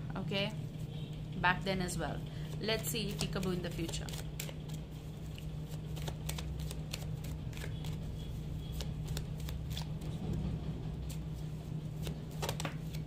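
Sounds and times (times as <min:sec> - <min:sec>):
steady low hum: 0:00.0 - 0:13.0
cards being shuffled by hand: 0:02.4 - 0:13.0.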